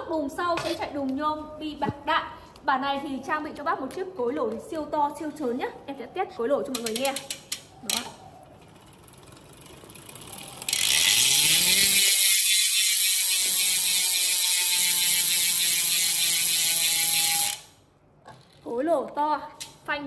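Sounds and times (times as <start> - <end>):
bicycle freehub buzzing: 6.8 - 17.8.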